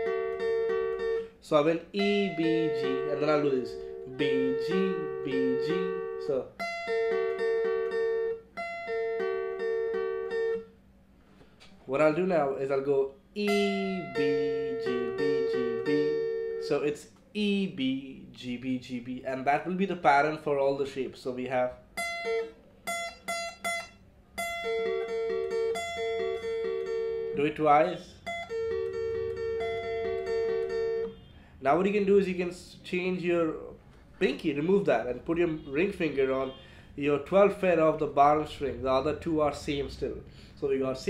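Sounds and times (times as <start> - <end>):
acoustic guitar arpeggio: 0.0 - 10.7, 12.4 - 17.0, 21.6 - 31.2.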